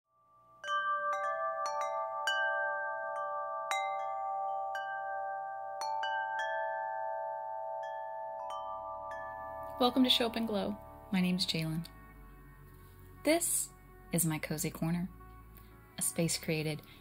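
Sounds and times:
wind chimes ringing: 0.1 - 11.9.

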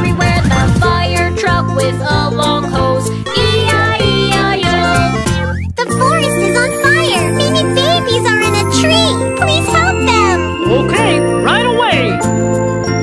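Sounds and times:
person singing: 0.0 - 12.2
children's song music: 0.0 - 13.0.

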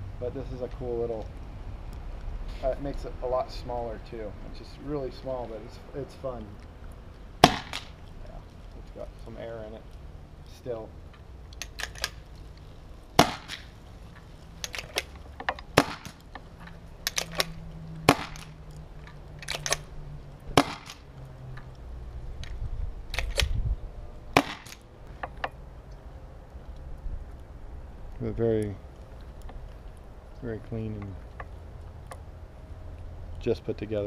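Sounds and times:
paintball gun shots: 7.4 - 8.0, 13.2 - 13.7, 15.7 - 16.2, 18.1 - 18.5, 20.6 - 21.0, 24.3 - 24.8.

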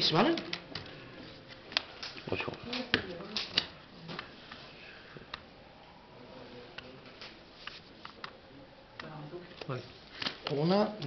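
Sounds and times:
playing cards clicking: 1.7 - 4.3, 9.0 - 10.6.

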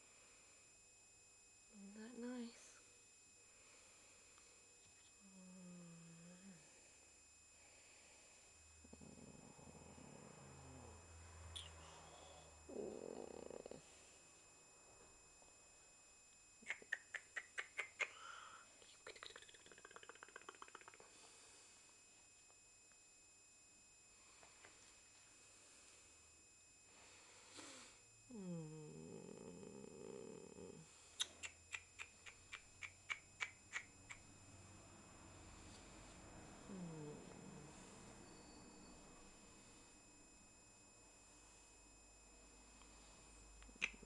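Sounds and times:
dog groaning: 12.7 - 13.8.

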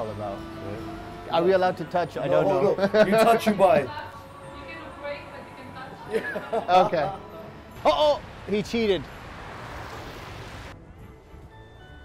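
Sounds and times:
traffic hissing on wet road: 8.1 - 10.8.

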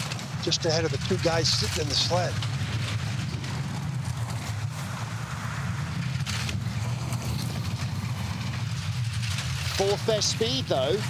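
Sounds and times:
bobsleigh rattle: 0.0 - 11.0
bobsleigh runners rumbling on ice: 0.0 - 11.0.

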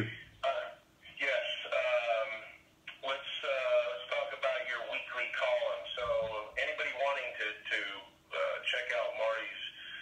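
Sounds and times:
voice over phone or radio: 0.0 - 9.8.

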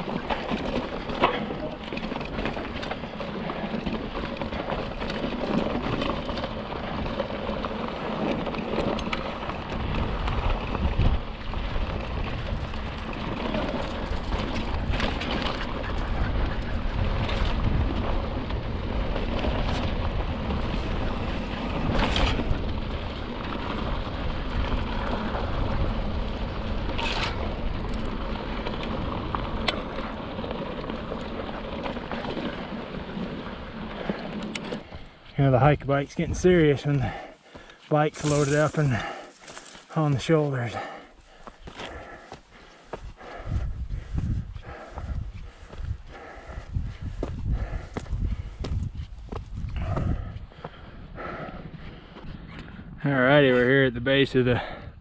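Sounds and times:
tyres rumbling on gravel: 0.0 - 52.2
wind on microphone: 9.6 - 29.7, 41.6 - 53.1.

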